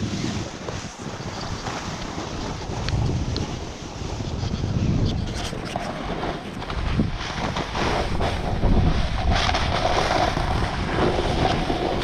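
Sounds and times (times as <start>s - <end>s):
skis scraping on snow: 0.0s - 12.0s
wind buffeting microphone: 0.0s - 12.0s.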